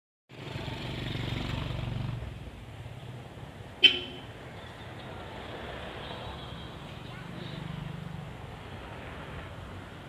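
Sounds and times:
vehicle engine rumbling: 0.3 - 10.0.

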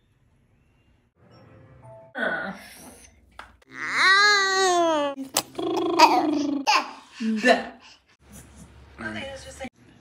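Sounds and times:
baby laughing: 4.5 - 7.6.

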